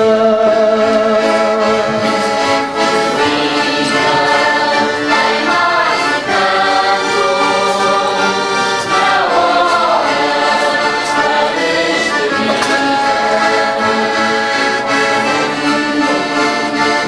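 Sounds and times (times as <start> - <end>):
accordion: 0.0 - 17.0
guitars playing: 0.0 - 17.0
people singing: 0.0 - 17.0.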